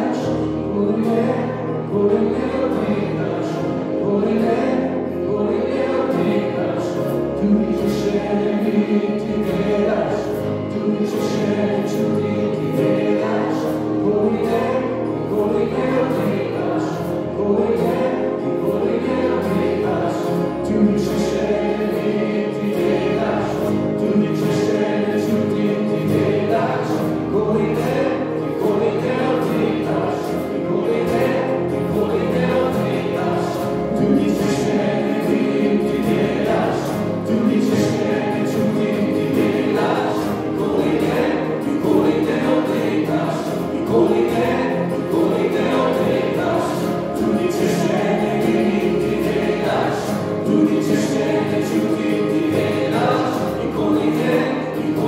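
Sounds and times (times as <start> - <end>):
keyboard: 0.0 - 55.0
strummed acoustic guitars: 0.0 - 55.0
voices singing together: 0.0 - 55.0.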